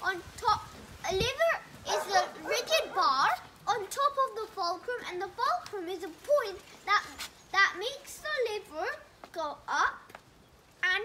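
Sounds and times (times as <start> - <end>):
child talking: 0.0 - 10.2, 10.8 - 11.0.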